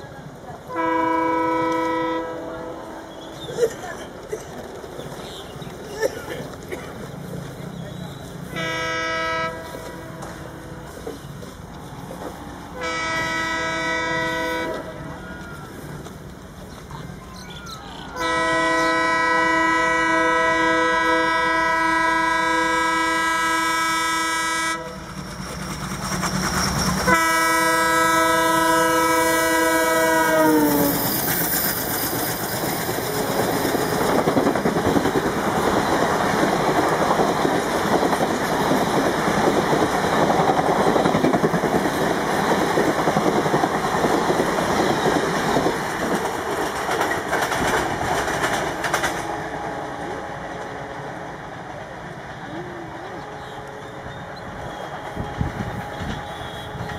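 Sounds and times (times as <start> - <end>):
diesel locomotive horn blasts: 0.7 - 3.2, 8.5 - 11.0, 12.8 - 15.7, 18.2 - 25.1, 27.1 - 31.0, 52.8 - 56.9
train wheels clacking on rails: 3.1 - 17.2, 22.8 - 52.5, 53.4 - 56.9.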